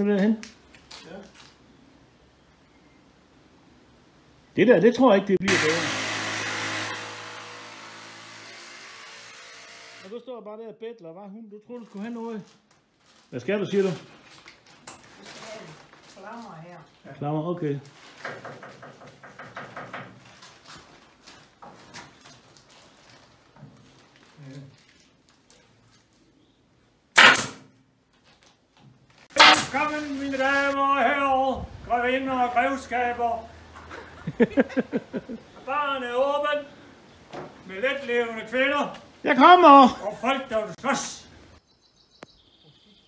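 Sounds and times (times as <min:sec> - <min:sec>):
staple gun firing: 0:27.2 - 0:27.6.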